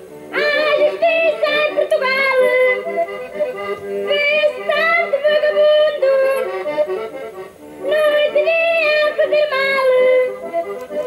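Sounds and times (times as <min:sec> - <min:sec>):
instrumental backing: 0:00.0 - 0:11.0
high singing voice: 0:00.3 - 0:07.0, 0:07.8 - 0:11.0.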